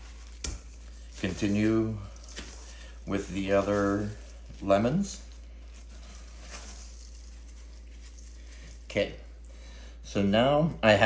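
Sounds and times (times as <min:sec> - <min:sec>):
salt rustling and crunching: 0:00.0 - 0:09.5
steady low hum: 0:00.0 - 0:11.0.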